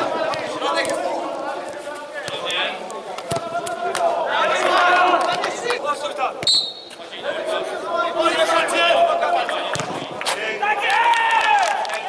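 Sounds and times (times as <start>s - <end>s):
players' voices echoing: 0.0s - 12.0s
referee's whistle blast: 6.4s - 7.0s.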